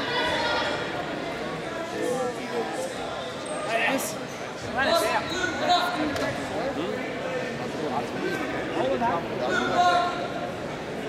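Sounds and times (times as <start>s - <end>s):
indistinct voices in a hall: 0.0s - 11.0s.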